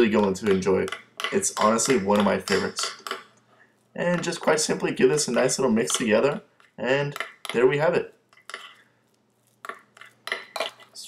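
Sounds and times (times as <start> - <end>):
fork clinking on ceramic bowl: 9.6 - 11.0.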